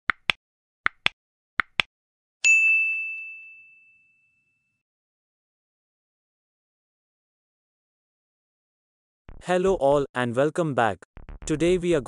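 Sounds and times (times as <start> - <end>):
mouse clicks: 0.1 - 1.9
bright bell ding: 2.4 - 4.8.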